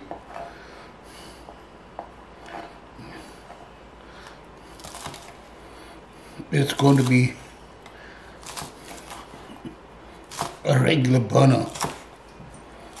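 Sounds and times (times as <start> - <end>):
knife scraping: 2.4 - 3.7, 6.6 - 7.4, 8.4 - 10.7, 11.4 - 13.0
knife chopping on cutting board: 10.2 - 10.6, 11.6 - 12.1.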